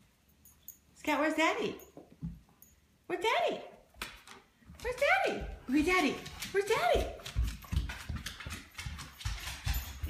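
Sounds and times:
footsteps on hardwood floor: 4.2s - 10.0s.

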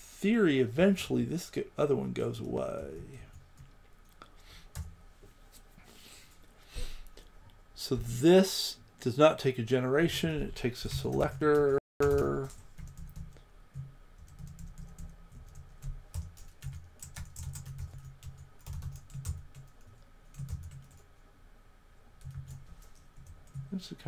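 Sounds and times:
computer keyboard typing: 10.8s - 21.0s, 22.2s - 23.9s.

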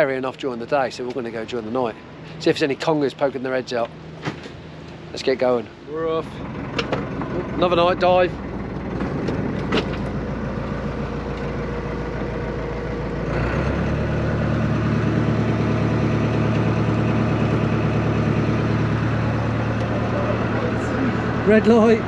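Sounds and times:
boat engine running: 6.2s - 22.0s.

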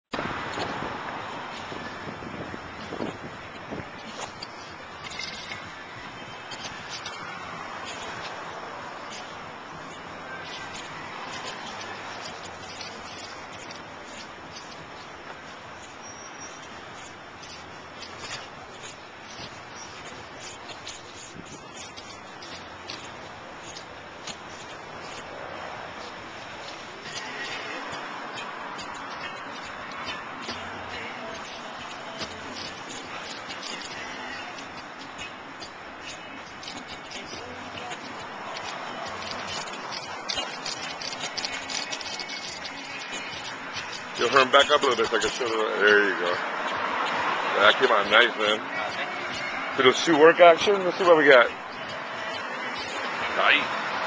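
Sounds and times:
steady outdoor hiss: 0.1s - 54.0s.

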